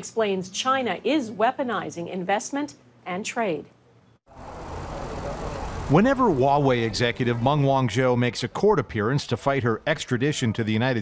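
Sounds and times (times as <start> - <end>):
traffic rushing: 4.3 - 8.1.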